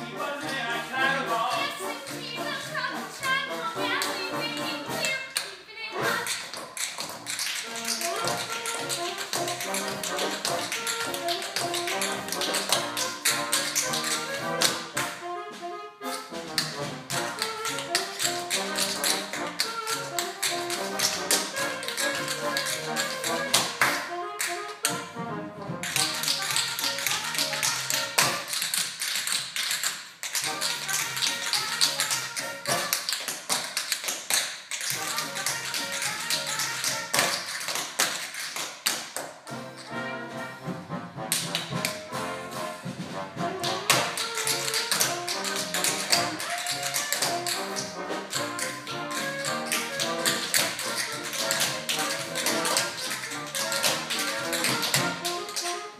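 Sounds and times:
band playing: 0.0s - 6.4s, 7.5s - 28.7s, 30.3s - 33.3s, 34.8s - 37.6s, 39.5s - 55.9s
tap shoes on stage floor: 0.3s - 55.8s.

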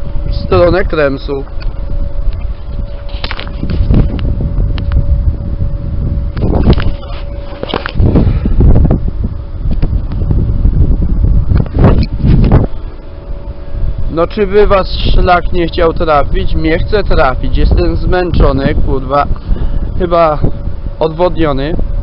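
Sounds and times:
faint steady whine: 0.0s - 22.0s
wind buffeting microphone: 0.0s - 22.0s.

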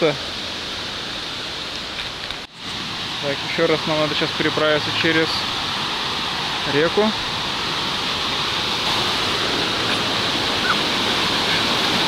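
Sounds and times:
mountain stream rushing: 0.0s - 12.0s.

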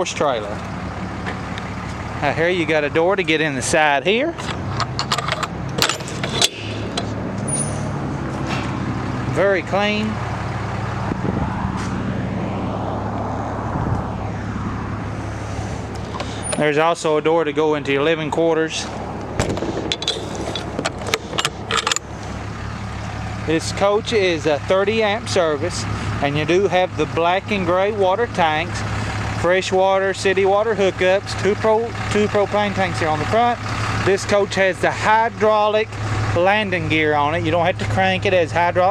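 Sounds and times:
metal latch clicking and rattling: 4.4s - 7.7s, 19.2s - 22.1s.

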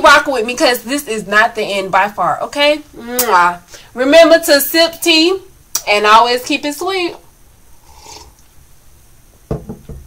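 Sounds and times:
faint breath: 3.7s - 4.0s.

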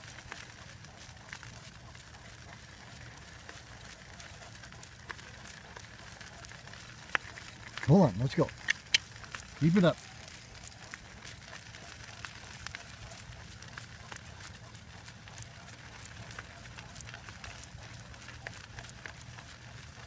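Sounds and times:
wheels rumbling on dirt road: 0.0s - 20.0s.

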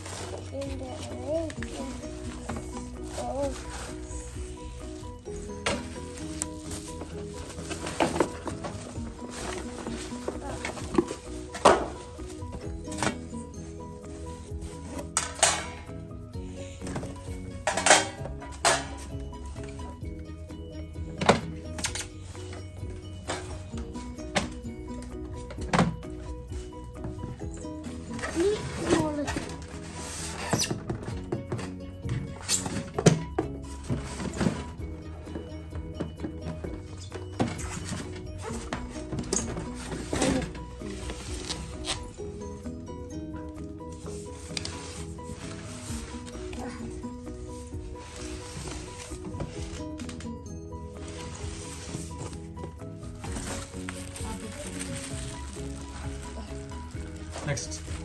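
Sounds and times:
bubble wrap rustling: 0.0s - 15.2s, 26.4s - 31.0s, 36.8s - 42.8s, 43.6s - 58.0s
background music with steady beat: 0.0s - 58.0s.

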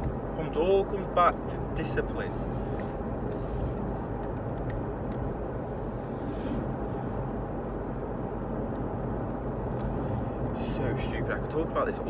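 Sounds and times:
road and engine noise in car: 0.0s - 12.0s.

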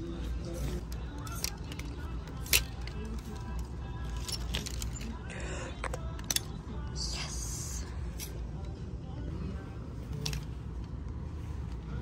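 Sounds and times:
background music: 0.0s - 12.0s
plastic hangers clicking on metal rack: 0.5s - 5.2s.

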